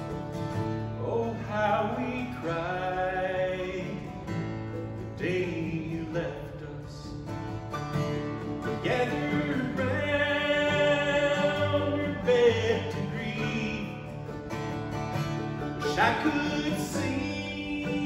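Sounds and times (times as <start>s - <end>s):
acoustic guitars: 0.0s - 18.0s
mandolin: 0.0s - 18.0s
voices singing: 8.7s - 14.4s, 15.5s - 18.0s.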